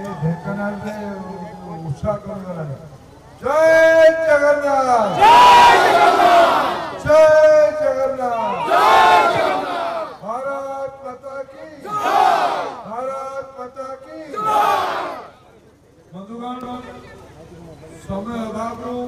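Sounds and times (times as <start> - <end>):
crowd shouting in unison: 5.1 - 7.0, 8.3 - 10.2, 11.8 - 12.9, 14.3 - 15.4.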